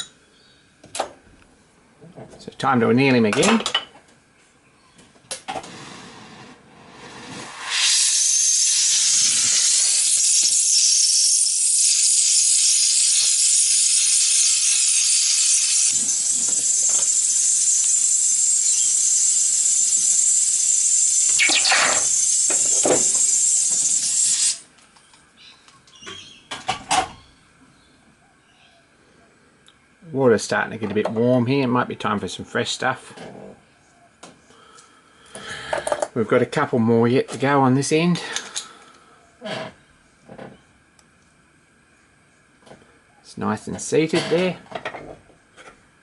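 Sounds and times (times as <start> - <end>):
gas torch hissing: 5.5 - 24.7.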